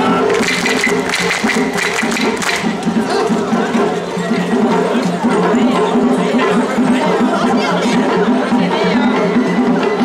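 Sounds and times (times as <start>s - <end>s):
wooden clappers clacking: 0.0s - 3.3s
rhythmic festival music: 0.0s - 10.0s.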